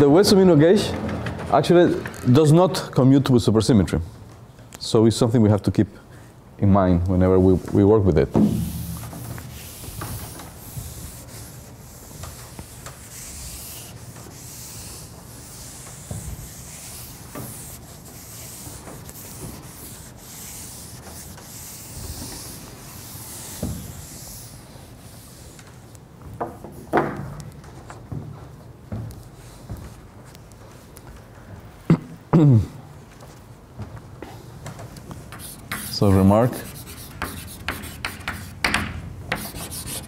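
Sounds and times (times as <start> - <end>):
chalk scratching on blackboard: 8.4 - 25.6, 35.3 - 40.0.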